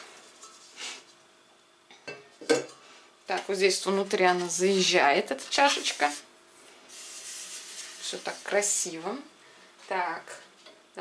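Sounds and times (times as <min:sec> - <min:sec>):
metal bowl clunk and ring: 0:01.9 - 0:02.8.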